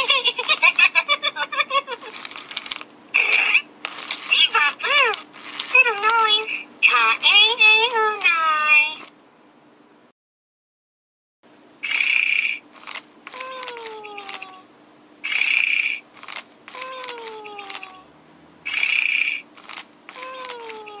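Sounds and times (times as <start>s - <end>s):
small clicks: 2.1s - 6.2s, 12.8s - 14.6s, 15.3s - 18.0s, 18.7s - 21.0s
toy snoring: 15.2s - 16.0s, 16.7s - 19.4s, 20.1s - 21.0s.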